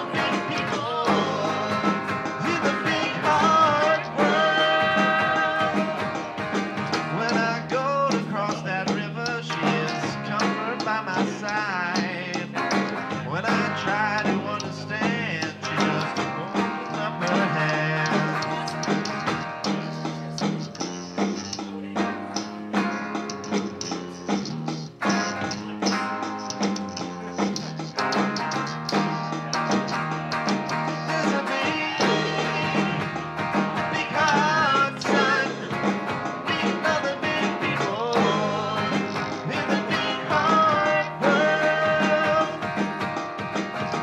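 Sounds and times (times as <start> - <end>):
drum hits: 0.0 - 44.0
live rock band: 0.0 - 44.0
steady bass line: 0.0 - 44.0.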